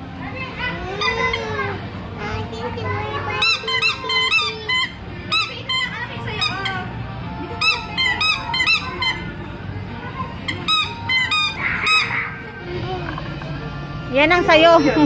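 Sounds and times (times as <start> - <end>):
background music: 0.0 - 15.0
bulb horn squeaky honks: 7.6 - 9.3.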